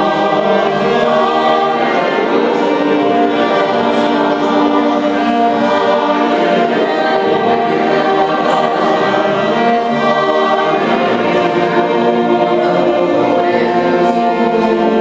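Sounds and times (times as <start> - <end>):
mixed choir singing held chords: 0.0 - 15.0
string accompaniment: 0.0 - 15.0.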